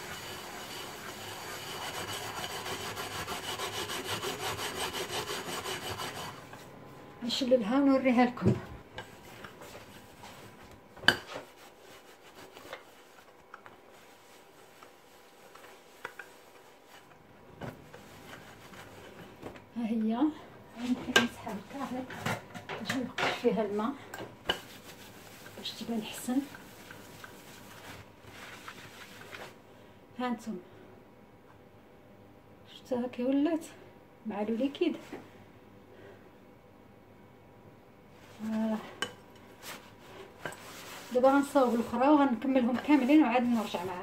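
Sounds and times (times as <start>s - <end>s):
paper towel rubbing a pan: 0.0s - 6.7s, 11.2s - 17.2s, 17.9s - 19.4s, 24.5s - 29.6s, 39.5s - 44.0s.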